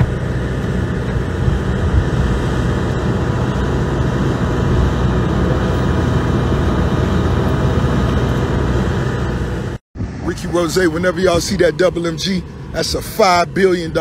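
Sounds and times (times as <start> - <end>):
loud rumbling: 0.0 - 14.0.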